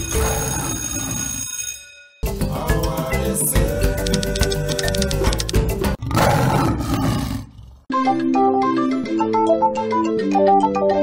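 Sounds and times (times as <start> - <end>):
lion roar sound effect: 6.0 - 7.8.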